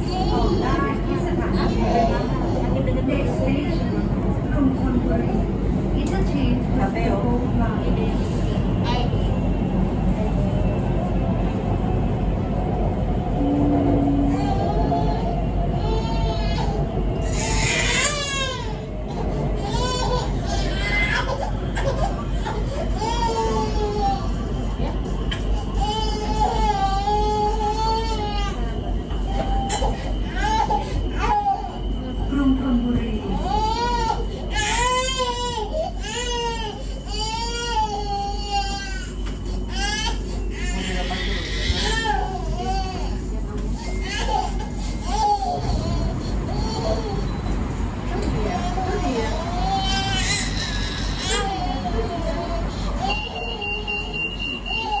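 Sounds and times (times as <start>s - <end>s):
train wheels and motors rumbling: 0.0s - 55.0s.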